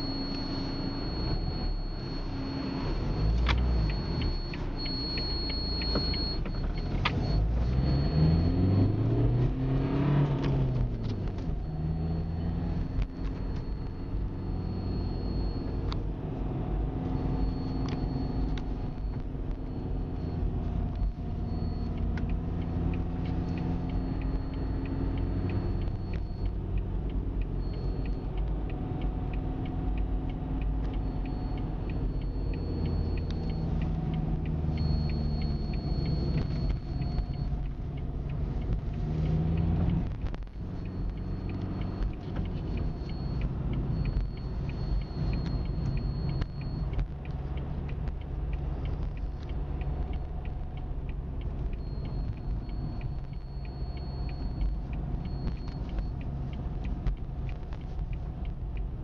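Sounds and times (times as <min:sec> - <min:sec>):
car engine running: 0:00.0 - 0:59.0
road rumble: 0:00.0 - 0:59.0.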